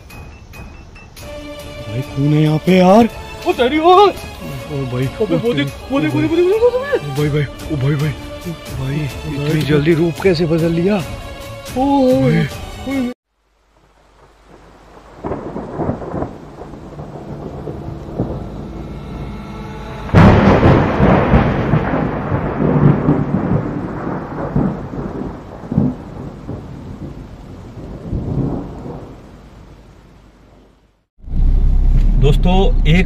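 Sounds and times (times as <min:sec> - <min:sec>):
rain: 0:00.0 - 0:33.0
loud thunderclap: 0:14.2 - 0:19.4, 0:20.0 - 0:29.3
rolling thunder: 0:14.2 - 0:29.8.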